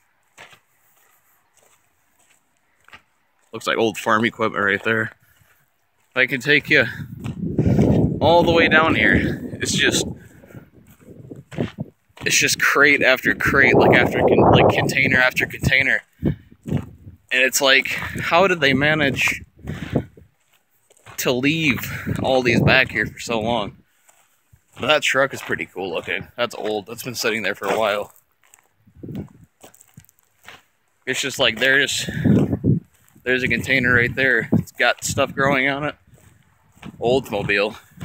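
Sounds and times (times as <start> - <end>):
soft footsteps outdoors: 0.0 - 38.0.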